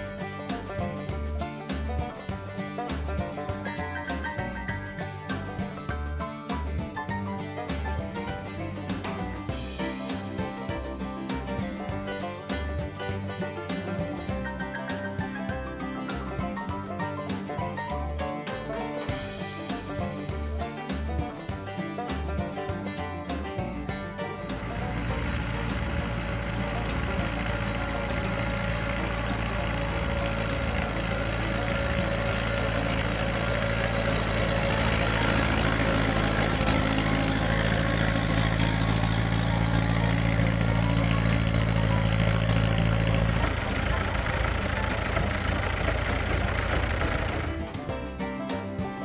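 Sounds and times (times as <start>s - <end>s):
engine running steadily: 0.0s - 17.1s, 22.3s - 48.4s
background music: 0.0s - 49.0s.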